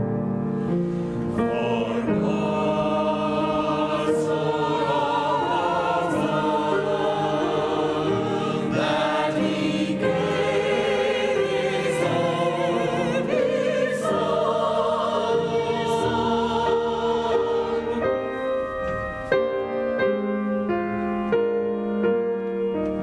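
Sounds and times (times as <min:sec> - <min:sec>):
choir singing: 0:00.6 - 0:19.6.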